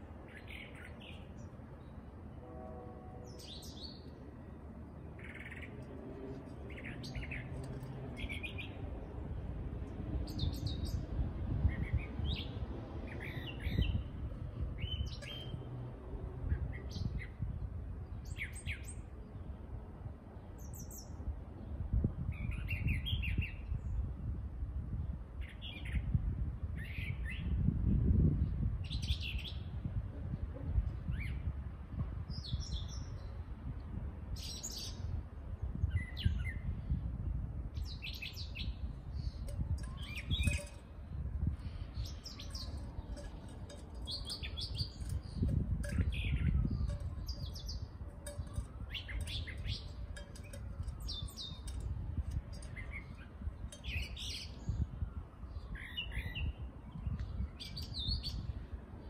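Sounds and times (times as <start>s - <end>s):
birds chirping: 0.2s - 9.4s, 10.2s - 19.6s, 37.8s - 58.6s.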